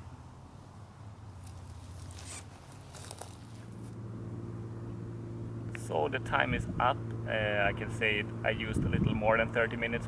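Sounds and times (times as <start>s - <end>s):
rustling and handling noise: 1.4s - 4.0s
short scrapes: 1.8s - 3.8s
low steady drone: 3.7s - 10.0s.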